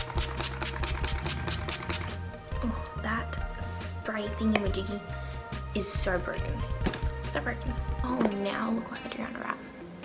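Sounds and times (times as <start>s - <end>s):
spray bottle spritzes: 0.0s - 2.2s
background music with bass line: 0.0s - 8.3s.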